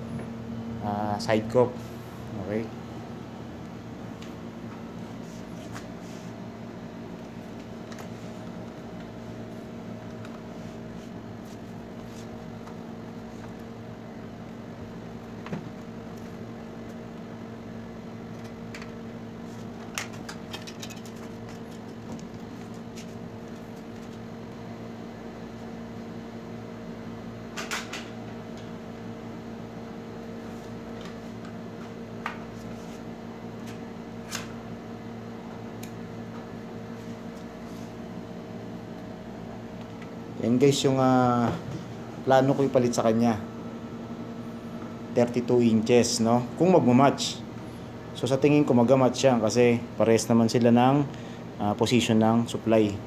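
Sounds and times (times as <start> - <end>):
steady machine hum: 0.0 - 53.0.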